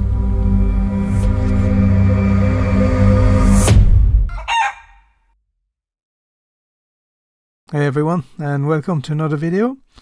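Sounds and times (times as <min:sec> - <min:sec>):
music sting: 0:00.0 - 0:04.3
rooster crow: 0:04.3 - 0:05.1.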